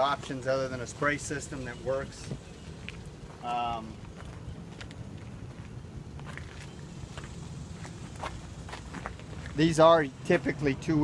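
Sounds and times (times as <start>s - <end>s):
footsteps on pavement: 0.0s - 9.8s
steady low hum: 0.0s - 11.0s.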